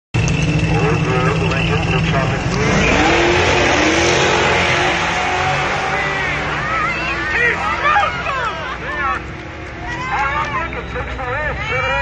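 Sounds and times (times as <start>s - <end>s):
race car engines accelerating: 0.2s - 12.0s.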